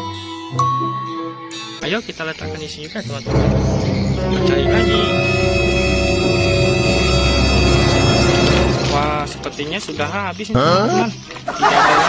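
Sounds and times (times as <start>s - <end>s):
steady low drone: 3.3s - 10.2s
held chord tones: 3.3s - 10.3s.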